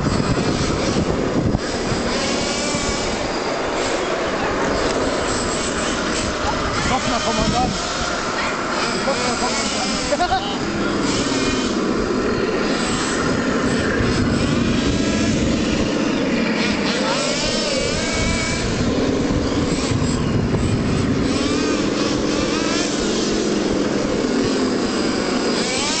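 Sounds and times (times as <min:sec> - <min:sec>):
model tank electronic engine sound: 0:00.0 - 0:26.0.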